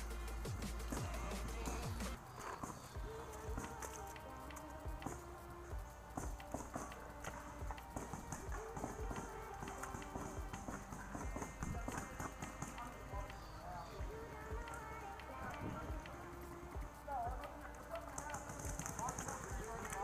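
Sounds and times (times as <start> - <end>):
paintball markers firing: 0.0 - 20.0.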